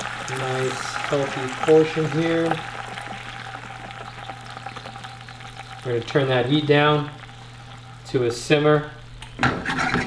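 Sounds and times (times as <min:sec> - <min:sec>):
sauce sizzling in hot oil: 0:00.0 - 0:09.1.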